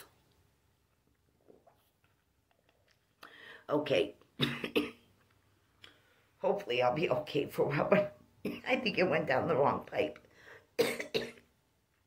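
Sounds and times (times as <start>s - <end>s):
woman coughing: 4.4s - 5.0s, 10.8s - 11.4s.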